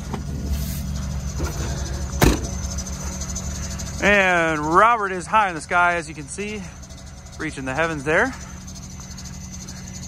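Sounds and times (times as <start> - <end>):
van engine idling: 0.0 - 10.0.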